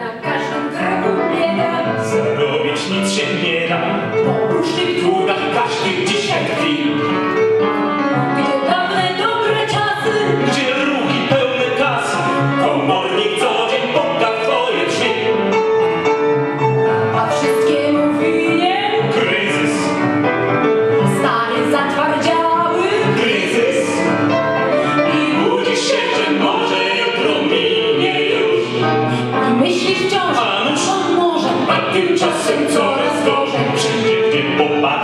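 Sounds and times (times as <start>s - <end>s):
person singing cabaret song: 0.0s - 7.1s, 8.4s - 15.5s, 17.2s - 20.0s, 21.1s - 24.1s, 24.9s - 35.0s
piano accompaniment: 0.0s - 35.0s.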